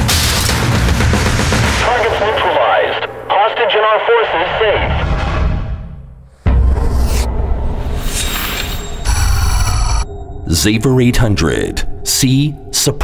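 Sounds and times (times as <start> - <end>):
tense music: 0.0 - 13.0.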